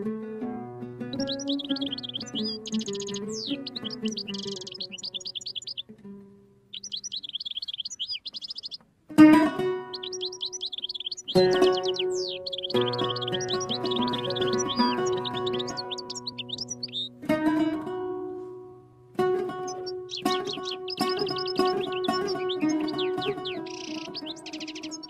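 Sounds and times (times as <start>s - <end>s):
solo oud playing: 0.0s - 5.2s, 9.1s - 25.0s
songbird chirping: 0.7s - 25.0s.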